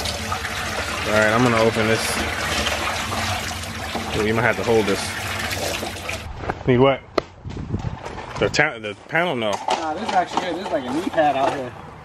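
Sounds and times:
hose water splashing into tank: 0.0 - 6.3.

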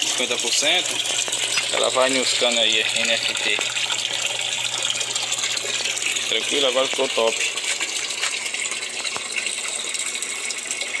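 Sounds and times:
water splashing into barrel: 0.0 - 11.0.

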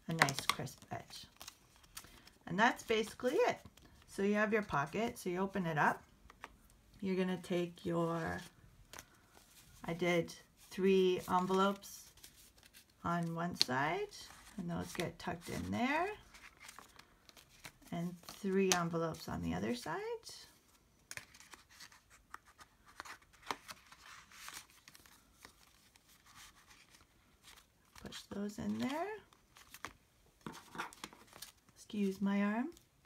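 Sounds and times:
paper rustling and scraping: 14.2 - 18.4, 28.7 - 31.6.

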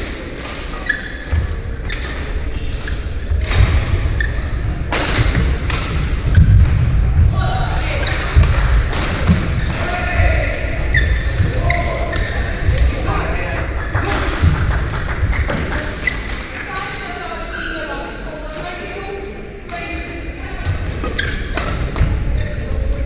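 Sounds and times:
voices chattering in hall: 0.0 - 23.0.

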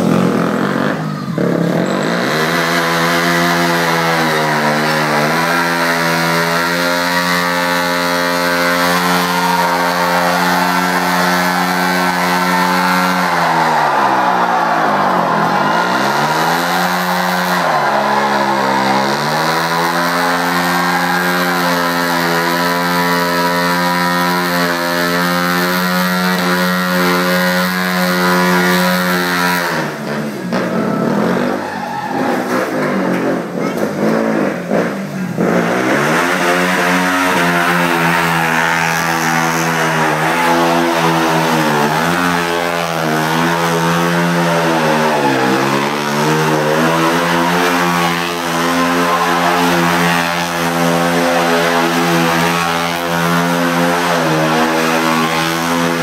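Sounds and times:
motorcycle engine revving high: 0.0 - 56.0
rough noise: 0.0 - 56.0.

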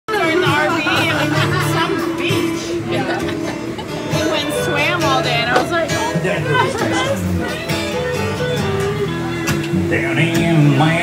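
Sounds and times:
live country music with guitar: 0.1 - 11.0
people talking: 0.1 - 11.0.

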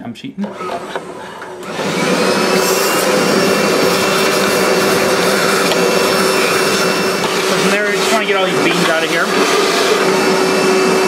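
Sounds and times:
shop vacuum sucking coffee beans: 0.4 - 11.0.

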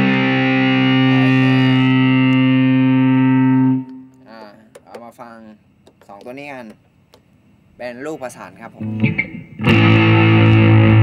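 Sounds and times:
distorted electric guitar chord: 0.0 - 4.3, 9.6 - 11.0.

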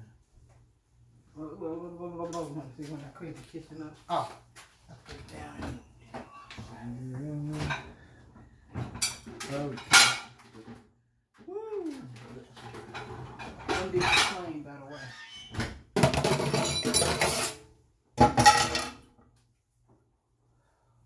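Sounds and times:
pots and pans clattering: 7.5 - 8.0, 8.7 - 10.9, 12.3 - 19.1.

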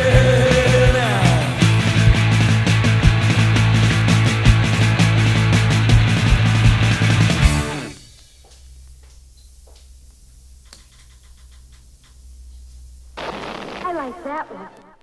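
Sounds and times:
loud rock song: 0.0 - 8.0
low steady hum: 8.1 - 13.2
person speaking: 13.8 - 15.0.

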